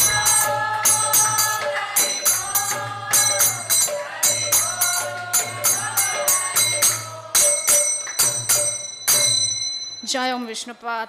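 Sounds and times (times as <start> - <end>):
woman chanting: 0.0 - 7.9
hand cymbals ringing: 0.0 - 10.5.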